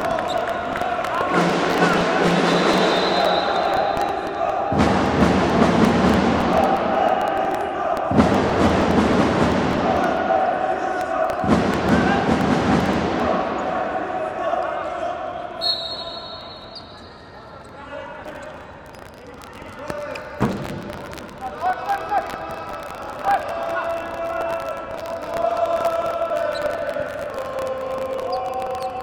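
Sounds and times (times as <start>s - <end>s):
crowd shouting and chanting: 0.0s - 29.0s.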